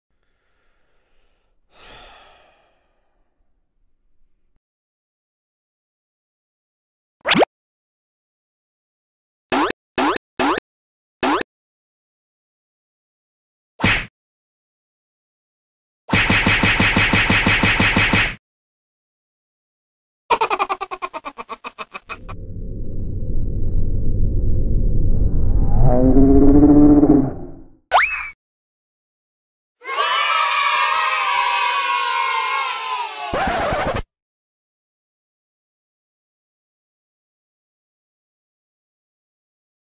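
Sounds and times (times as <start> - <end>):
person sighing: 1.2 - 3.2
low rumble: 22.2 - 27.8.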